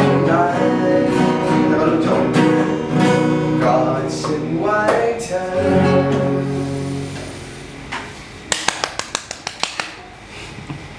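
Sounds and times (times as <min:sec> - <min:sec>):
acoustic guitar song: 0:00.0 - 0:08.5
hand claps: 0:08.5 - 0:10.1.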